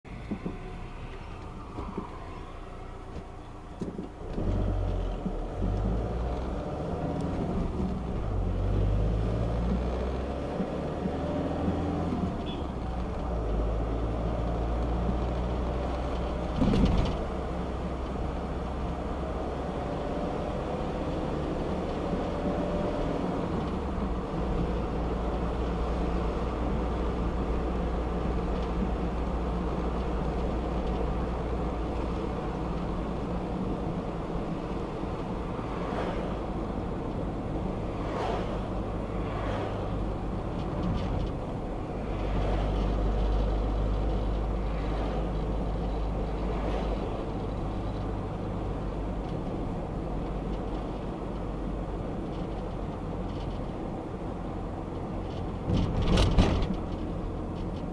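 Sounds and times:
car road and engine rumble: 0:00.0 - 0:57.9
passing traffic swishes: 0:00.1 - 0:57.9.

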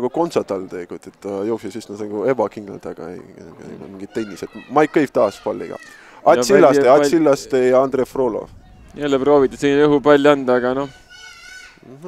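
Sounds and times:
man talking: 0:00.0 - 0:10.9.

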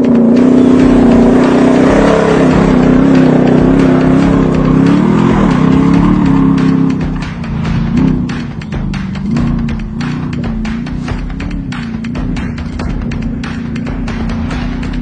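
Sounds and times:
music: 0:00.0 - 0:15.0
off-road engine revving: 0:00.0 - 0:15.0.

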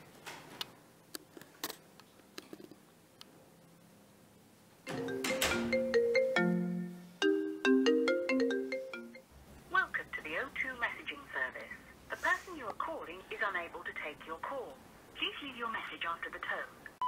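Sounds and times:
marimba ringtone: 0:04.9 - 0:09.2.

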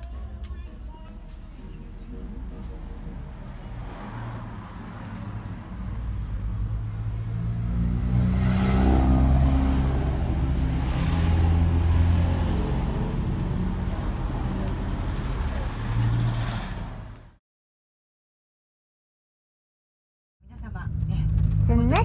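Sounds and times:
vehicle engine revving: 0:02.0 - 0:17.4, 0:20.6 - 0:22.0.

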